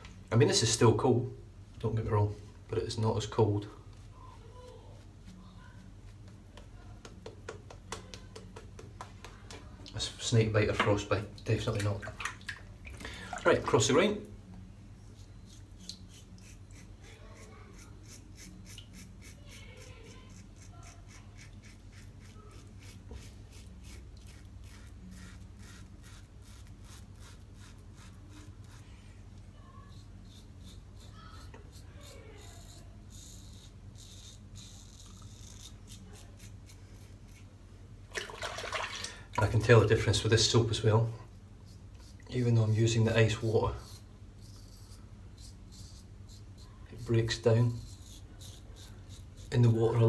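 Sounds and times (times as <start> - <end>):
low steady hum: 0.0 - 50.0
razor scraping stubble: 15.0 - 29.0, 29.8 - 37.5, 41.6 - 50.0.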